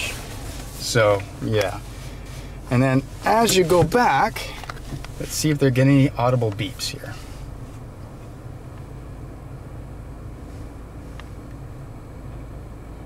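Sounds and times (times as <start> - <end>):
car engine idling: 0.0 - 13.0
climate control fan: 0.0 - 13.0.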